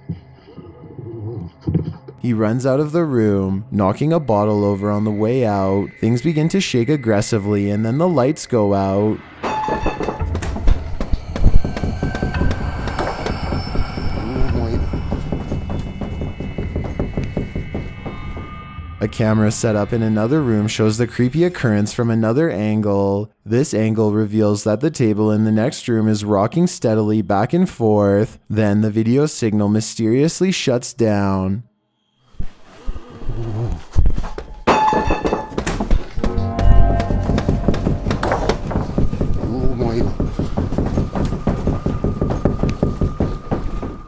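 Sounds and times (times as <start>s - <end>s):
music: 0.0s - 22.1s, 34.7s - 44.0s
low rumble: 10.1s - 21.8s, 36.2s - 44.0s
furniture rattling: 34.7s - 44.0s.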